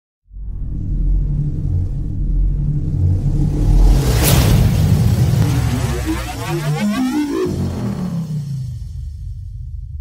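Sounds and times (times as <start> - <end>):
deep rumbling bass drone: 0.2 - 10.0
soundtrack hit: 0.3 - 10.0.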